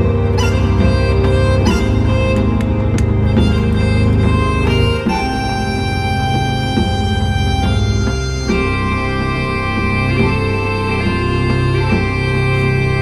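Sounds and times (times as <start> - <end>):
synthesizer chords and lead: 0.0 - 13.0.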